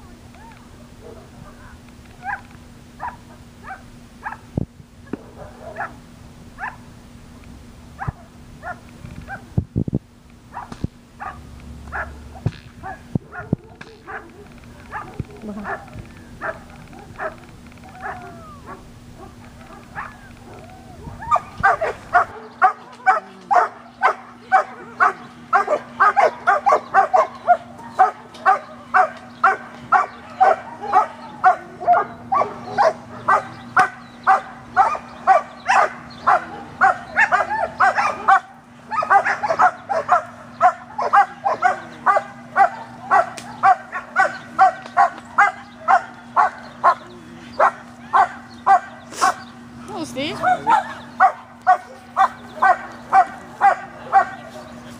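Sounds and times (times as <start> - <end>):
dog barking: 1.0 - 4.5, 5.4 - 6.0, 6.6 - 6.8, 8.0 - 9.5, 10.5 - 20.6, 21.3 - 49.4, 50.4 - 54.7.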